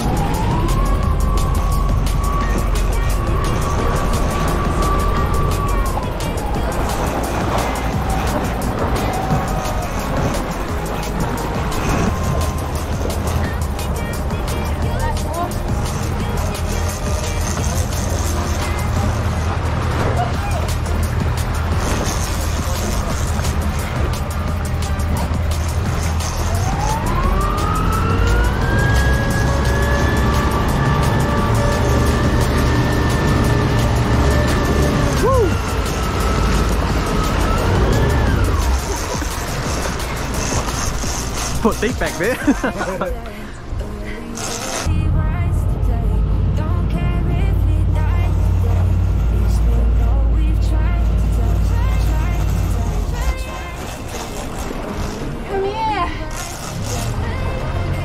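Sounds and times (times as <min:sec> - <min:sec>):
outboard motor running: 0:00.0 - 0:58.0.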